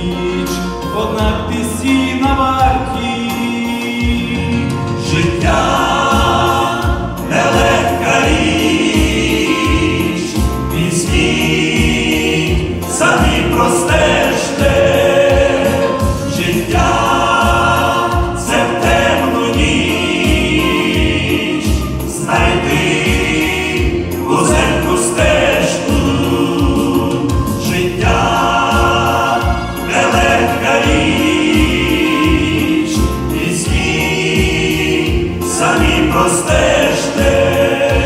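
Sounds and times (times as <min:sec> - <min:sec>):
male vocal group singing in harmony: 0:00.0 - 0:38.0.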